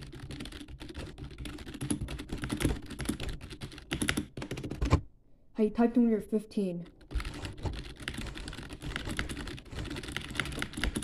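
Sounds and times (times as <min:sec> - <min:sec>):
fast typing on keyboard: 0:00.0 - 0:05.0, 0:06.8 - 0:11.0.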